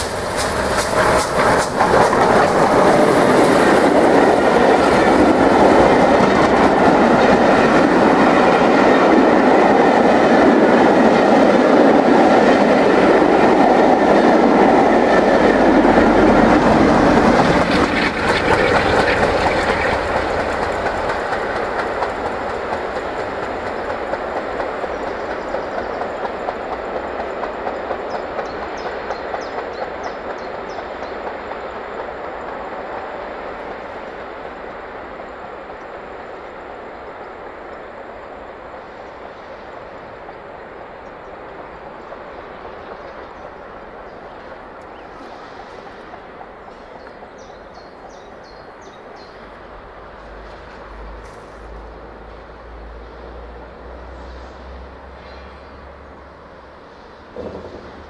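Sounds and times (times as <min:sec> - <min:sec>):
coaches clattering over rail joints: 0:00.0 - 0:30.5, 0:57.3 - 0:58.0
train passing at speed: 0:00.0 - 0:58.0.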